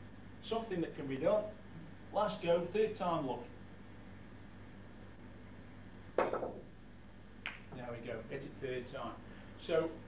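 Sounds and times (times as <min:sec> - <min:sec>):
snooker cue striking ball: 0:06.2 - 0:06.7.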